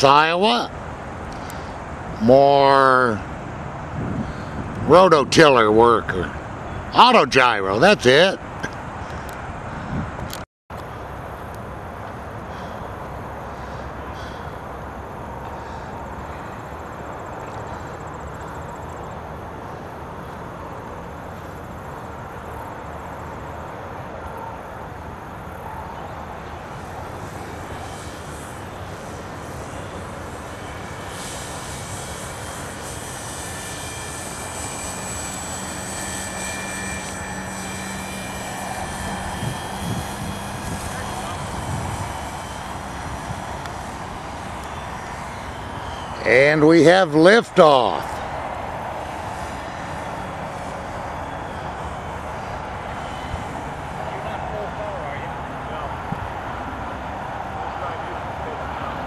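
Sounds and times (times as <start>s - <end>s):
higher whine: 0.0s - 59.0s
small model engine running: 26.3s - 56.5s
rotor spinning: 26.6s - 54.5s.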